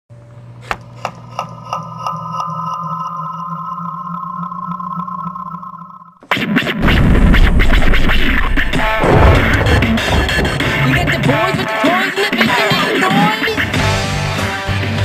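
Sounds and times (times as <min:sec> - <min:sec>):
electronic drone: 0:01.9 - 0:06.2.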